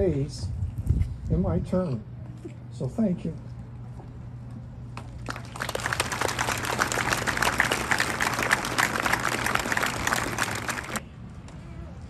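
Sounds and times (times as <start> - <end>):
audience applauding: 5.2 - 11.0.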